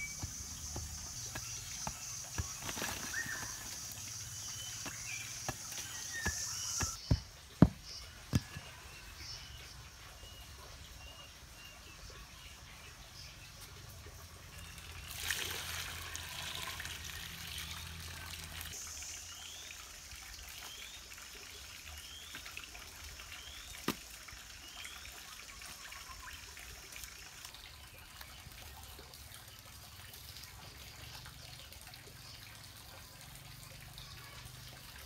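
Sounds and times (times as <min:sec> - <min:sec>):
hands squelching mud: 0:00.0 - 0:07.0
water pouring onto soil: 0:00.0 - 0:07.0, 0:14.5 - 0:32.2.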